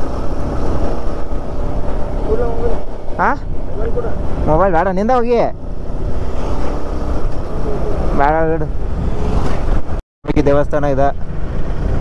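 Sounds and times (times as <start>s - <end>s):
wind rush on microphone: 0.0s - 10.0s
motorcycle engine: 0.0s - 12.0s.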